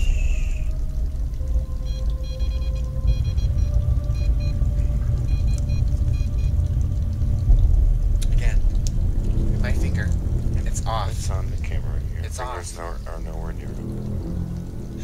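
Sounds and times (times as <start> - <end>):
low rumble on microphone: 3.0 - 15.0.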